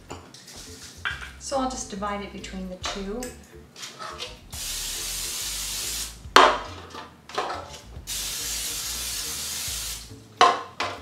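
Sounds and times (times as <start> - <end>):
pans clattering: 3.8 - 4.4, 6.4 - 7.8
cooking spray hissing: 4.5 - 6.3, 8.0 - 10.2.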